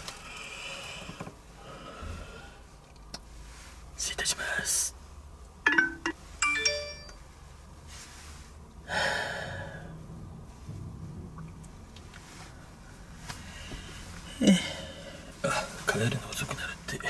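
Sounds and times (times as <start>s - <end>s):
bell-like chime: 5.7s - 7.2s.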